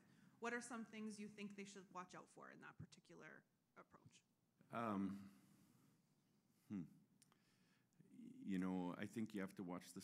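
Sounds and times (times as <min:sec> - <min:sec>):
man humming briefly: 0:06.7 - 0:06.9.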